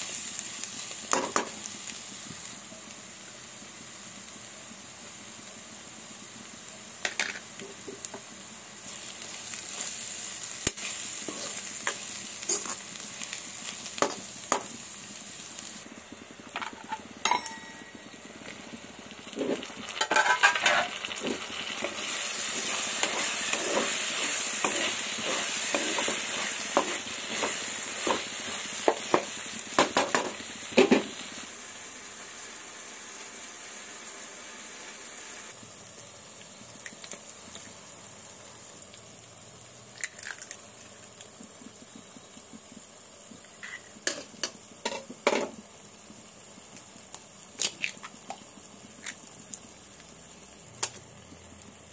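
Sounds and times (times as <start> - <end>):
vegetables sizzling in oil: 0.0 - 51.9
spatula scraping a pan: 10.7 - 12.8, 19.3 - 28.3.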